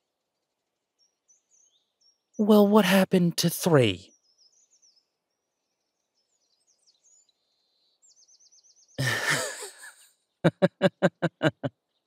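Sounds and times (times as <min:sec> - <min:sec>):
faint birdsong: 0:00.0 - 0:02.7, 0:04.0 - 0:12.0.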